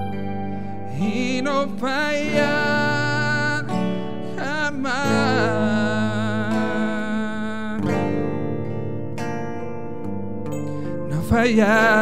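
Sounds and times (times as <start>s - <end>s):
clean electric guitar strumming: 0.0s - 12.0s.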